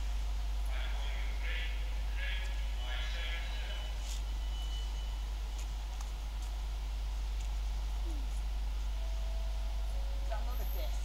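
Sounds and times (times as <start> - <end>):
electric train low rumble: 0.0 - 11.0
high steady beep: 3.6 - 5.3.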